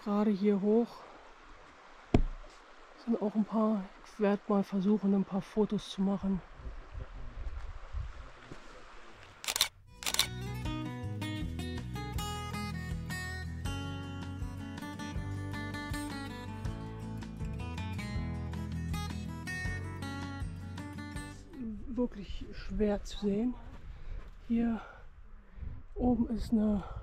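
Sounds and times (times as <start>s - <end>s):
camera shutter clicks: 9.4s - 10.4s
instrumental background music: 10.0s - 21.6s.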